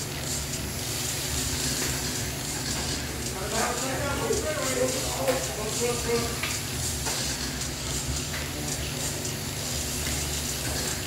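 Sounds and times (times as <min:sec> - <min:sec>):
rc cars motors and tyres hissing: 0:00.0 - 0:11.0.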